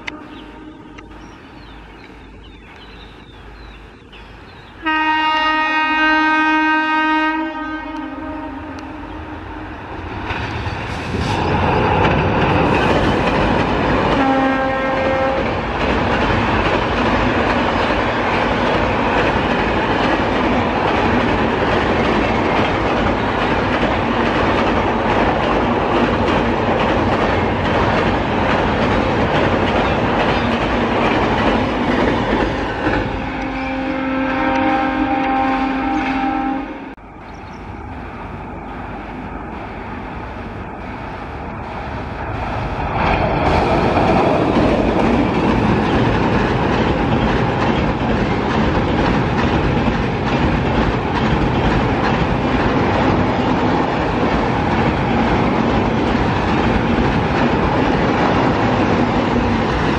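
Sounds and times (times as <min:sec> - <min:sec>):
train horn blasts: 0:00.0 - 0:01.1, 0:04.8 - 0:09.8, 0:14.1 - 0:15.5, 0:33.1 - 0:37.0
train wheels rumbling on bridge: 0:00.0 - 0:59.9.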